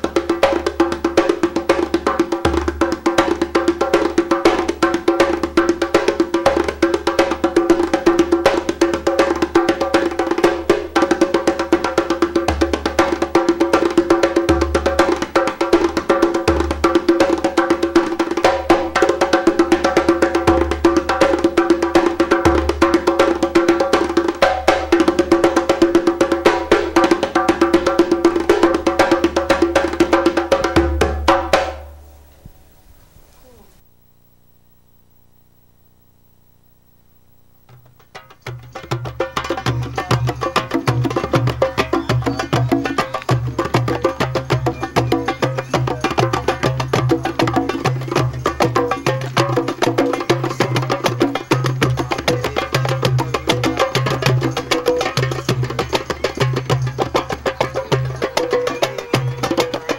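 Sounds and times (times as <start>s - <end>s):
djembe drumming: 0.0s - 32.6s, 37.7s - 59.9s.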